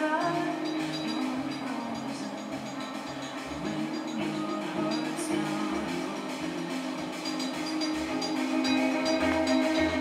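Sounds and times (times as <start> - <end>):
band playing sustained chords: 0.0 - 10.0
light cymbals: 0.0 - 10.0
upright bass notes: 0.0 - 10.0.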